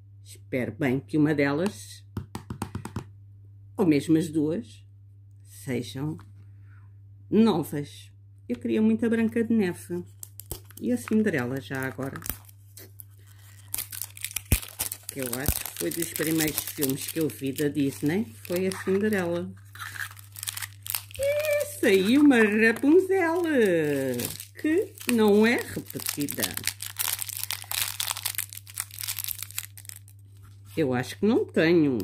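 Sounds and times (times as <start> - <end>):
plastic wrapper crinkling and tearing: 10.0 - 30.8.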